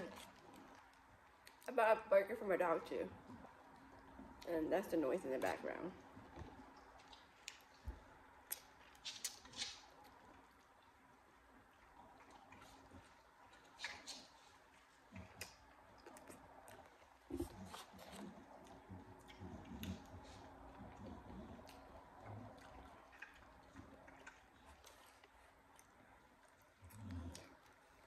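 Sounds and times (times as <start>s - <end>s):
wet mouth chewing clicks: 8.5s - 10.6s, 12.0s - 28.0s.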